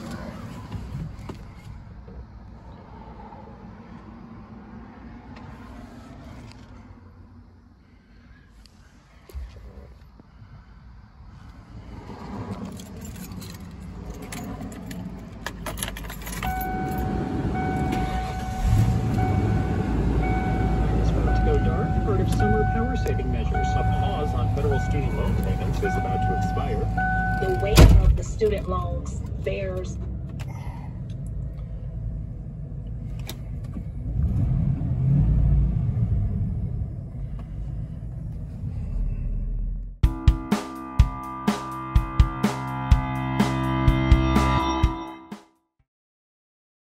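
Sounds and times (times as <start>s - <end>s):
car engine starting and idling: 0.0s - 45.0s
keys jangling: 12.5s - 17.0s
car warning chime: 16.3s - 30.0s.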